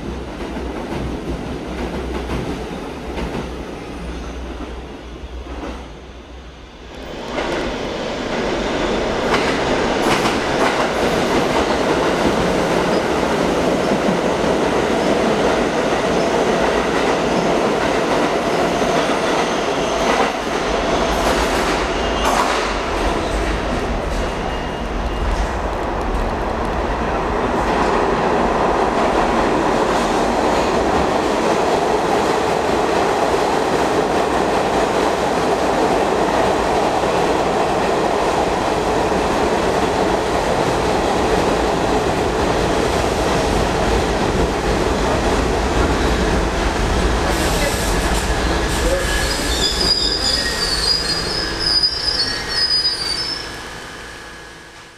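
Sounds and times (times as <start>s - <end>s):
train wheels rumbling on rails: 0.0s - 54.9s
high wheel squeal: 48.7s - 54.8s.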